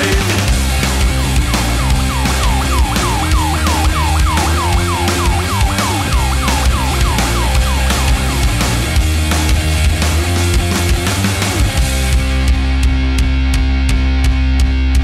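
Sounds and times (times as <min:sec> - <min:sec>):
heavy rock song: 0:00.0 - 0:15.0
siren-like swoop: 0:01.2 - 0:08.6.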